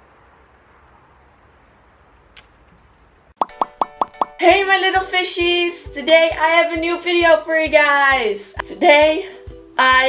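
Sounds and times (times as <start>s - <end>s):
faint outdoor background noise: 0.0s - 3.4s
popping plop sound effects: 3.4s - 4.4s.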